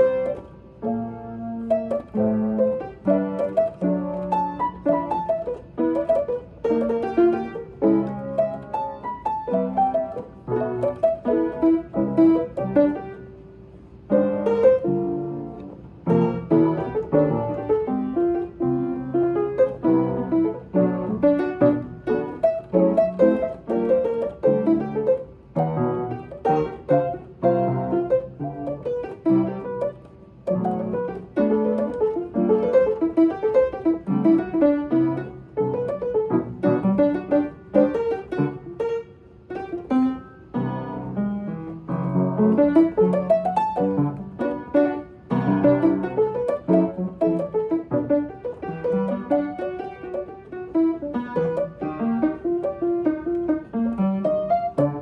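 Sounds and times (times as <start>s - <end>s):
upright piano playing: 0.0s - 55.0s.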